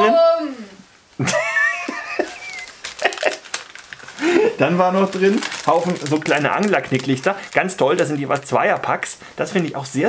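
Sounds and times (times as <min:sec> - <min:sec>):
man laughing quietly: 0:01.2 - 0:04.6.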